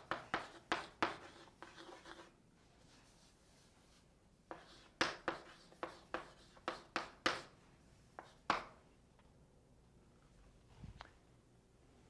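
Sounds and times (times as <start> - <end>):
pen scratching on board: 0.0 - 2.3, 4.5 - 7.5.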